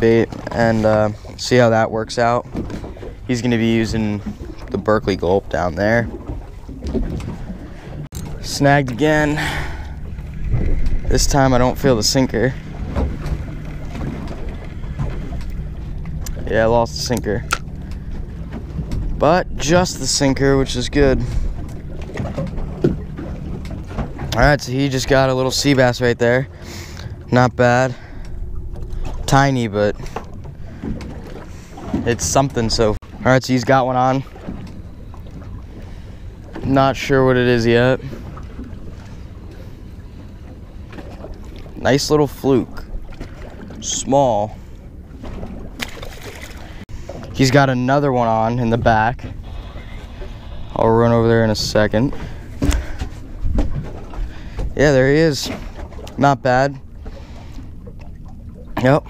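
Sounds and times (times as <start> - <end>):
boat engine idling: 0.0 - 59.0
low wind rumble: 0.0 - 59.0
wind on microphone: 5.4 - 24.6.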